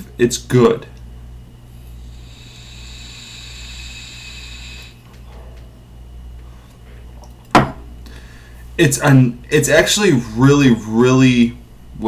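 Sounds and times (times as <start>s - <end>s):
hiss of air drawn through vape: 1.8s - 5.0s
breathy exhale: 1.9s - 5.0s, 8.1s - 8.6s.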